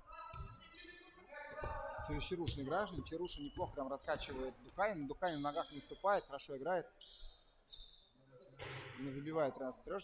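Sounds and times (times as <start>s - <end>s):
shoes squeaking on court: 0.0s - 9.4s.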